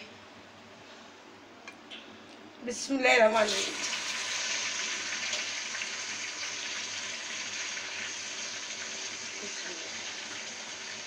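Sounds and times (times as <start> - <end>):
meat sizzling in hot oil: 3.4 - 11.0.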